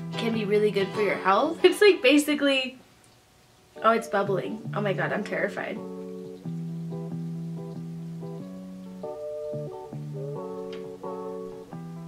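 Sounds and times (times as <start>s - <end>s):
soft instrumental music: 0.0s - 2.2s, 3.8s - 12.0s.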